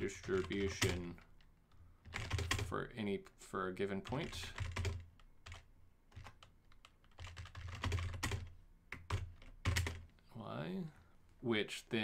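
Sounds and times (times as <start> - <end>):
keyboard typing: 0.0 - 2.7, 4.0 - 10.1.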